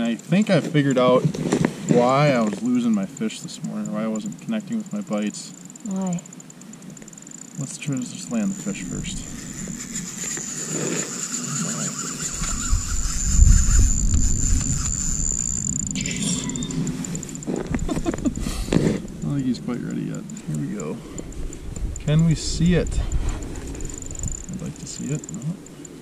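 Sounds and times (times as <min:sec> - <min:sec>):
fishing reel clicking buzz: 0:01.9 - 0:26.0.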